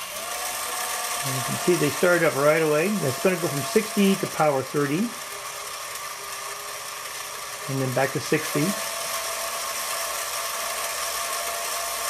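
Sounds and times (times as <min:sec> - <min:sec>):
robot motors whirring with gear whine: 0:00.0 - 0:12.0.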